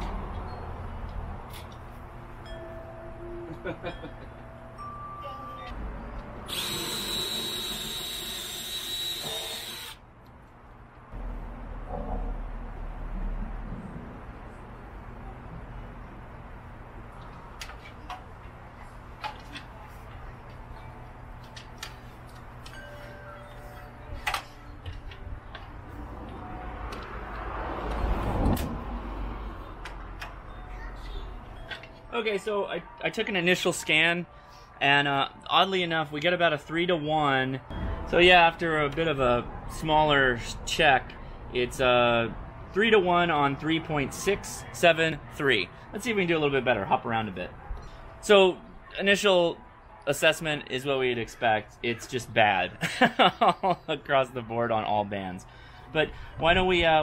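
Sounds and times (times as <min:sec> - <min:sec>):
loud high whirring: 0:06.4 - 0:10.0.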